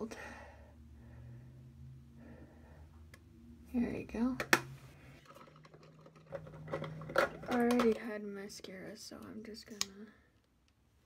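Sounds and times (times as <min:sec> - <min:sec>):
faint steady hum: 0:00.0 - 0:11.0
plastic makeup items clicking: 0:04.4 - 0:08.2.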